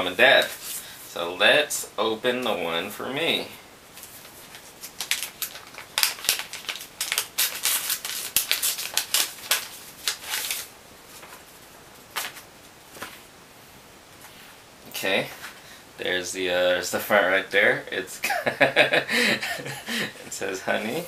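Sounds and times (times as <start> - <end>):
envelope paper ripping: 4.0 - 11.4
paper crinkling: 4.0 - 13.3.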